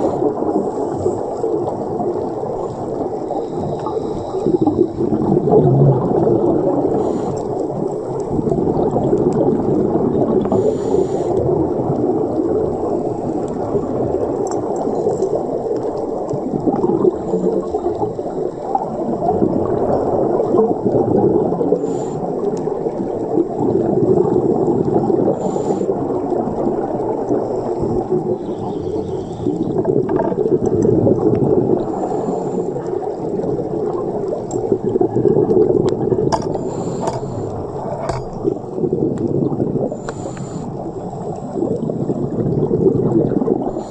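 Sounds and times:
muffled bubbling of exhaled air: 0:00.0 - 0:43.9
diver's regulator breathing: 0:02.6 - 0:05.3, 0:06.7 - 0:08.2, 0:10.4 - 0:11.8, 0:21.7 - 0:22.7, 0:25.2 - 0:26.2, 0:27.6 - 0:30.4, 0:31.7 - 0:33.2, 0:36.4 - 0:38.5, 0:39.8 - 0:42.3, 0:43.6 - 0:43.9.

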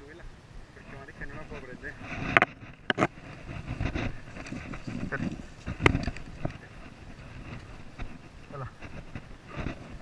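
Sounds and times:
low rumbling handling noise: 0:01.0 - 0:10.0.

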